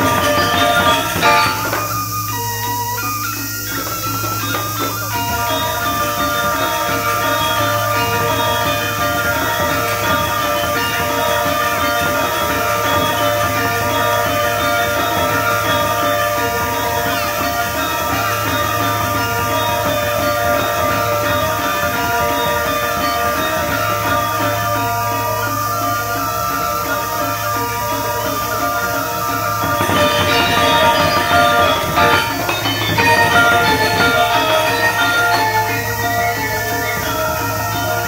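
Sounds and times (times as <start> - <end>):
gamelan metallophones ringing: 0.0 - 38.0
low sustained tone: 0.0 - 38.0.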